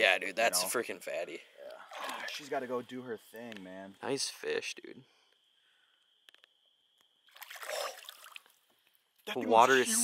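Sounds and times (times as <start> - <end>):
fish splashing in water: 7.3 - 8.6.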